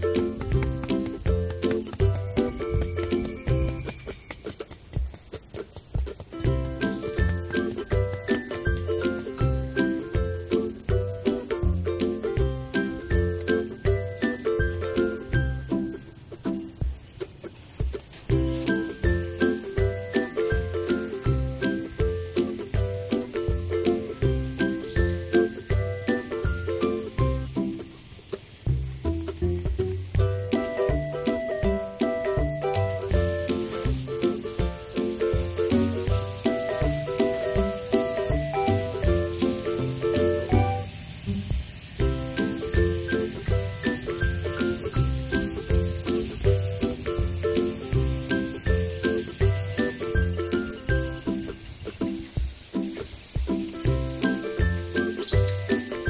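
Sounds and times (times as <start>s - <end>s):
music with low beat: 0.0s - 16.0s, 16.7s - 27.9s, 28.7s - 56.0s
insects chirring: 0.0s - 56.0s.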